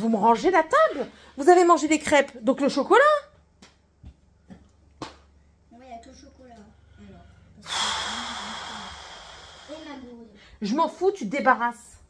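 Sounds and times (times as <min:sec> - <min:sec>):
loud hissing rush with whistle: 0:07.7 - 0:10.0.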